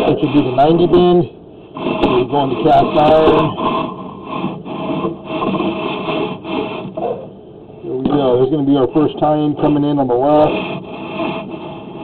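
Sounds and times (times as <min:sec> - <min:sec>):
inspection cable scraping in drain: 0:01.8 - 0:06.9.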